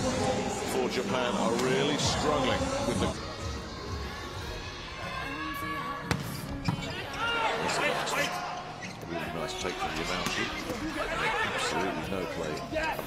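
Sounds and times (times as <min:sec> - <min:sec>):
arena crowd noise with voices: 0:00.0 - 0:13.0.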